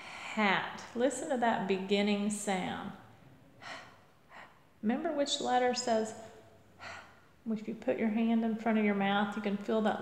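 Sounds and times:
woman's breathy puffs: 0.0s - 0.4s, 3.6s - 4.7s, 6.8s - 7.4s.

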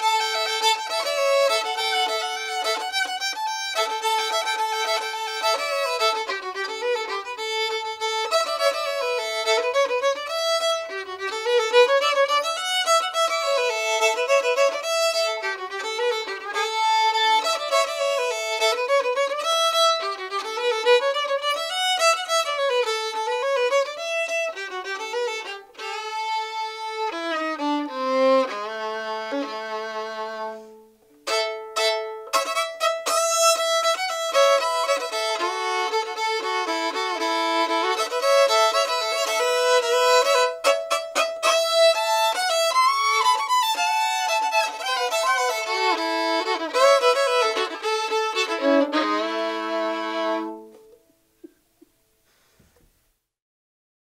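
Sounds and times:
solo fiddle tune: 0.0s - 51.2s.

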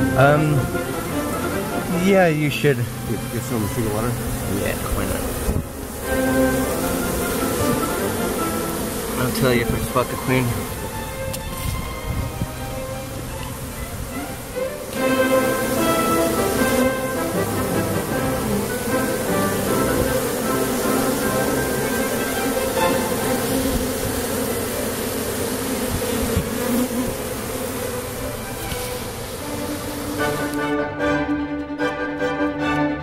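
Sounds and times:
honeybees buzzing: 0.0s - 32.9s
string music: 0.0s - 33.0s.

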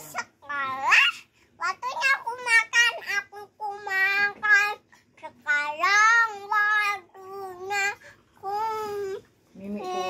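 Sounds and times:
toddler singing: 0.0s - 10.0s.

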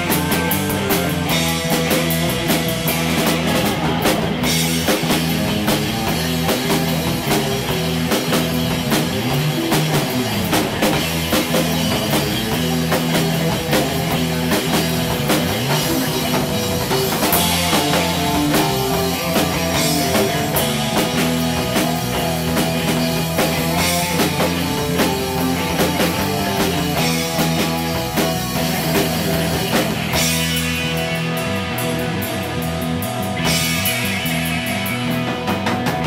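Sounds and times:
drum kit: 0.0s - 36.0s
electric guitar: 0.0s - 36.0s.

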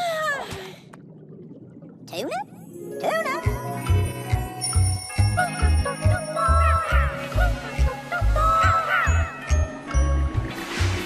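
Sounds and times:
tinkling music with bass beat: 3.4s - 7.5s, 9.1s - 10.8s.

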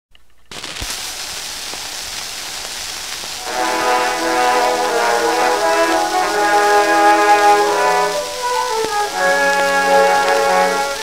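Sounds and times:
gramophone hiss and surface noise: 0.4s - 11.0s
brass band chords: 3.4s - 11.0s.

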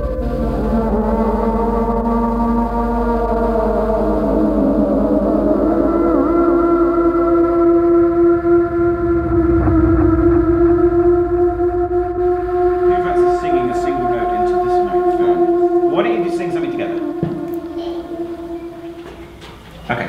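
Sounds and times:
electronic music sustained tones: 0.0s - 20.0s.

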